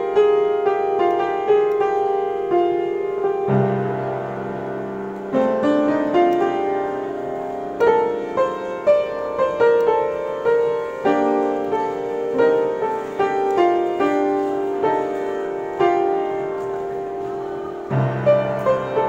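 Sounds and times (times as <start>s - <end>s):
piano melody: 0.0s - 19.0s.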